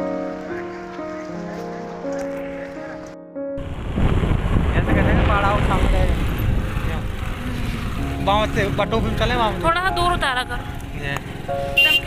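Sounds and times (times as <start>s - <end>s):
vehicle riding along road: 0.0s - 12.0s
wind rumble on microphone: 3.6s - 9.0s.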